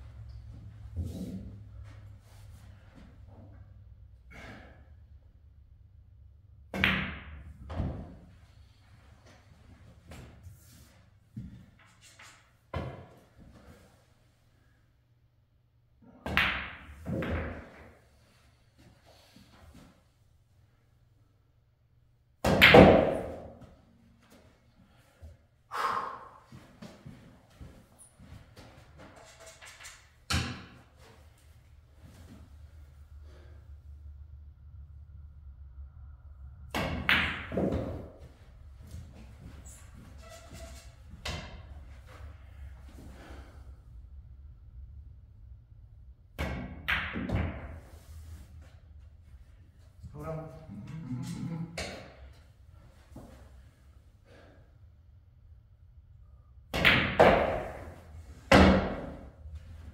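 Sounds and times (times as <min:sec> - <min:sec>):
pool cue striking ball: 0:22.4 - 0:23.6, 0:56.8 - 0:59.3.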